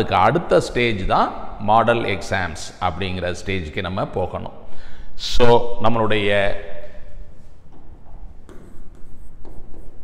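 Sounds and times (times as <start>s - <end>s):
stylus scratching and tapping on glass: 7.7s - 10.0s.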